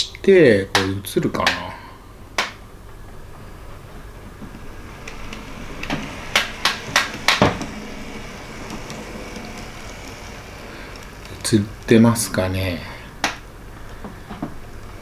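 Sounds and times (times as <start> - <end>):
model railcar motor hum: 2.1 - 15.0.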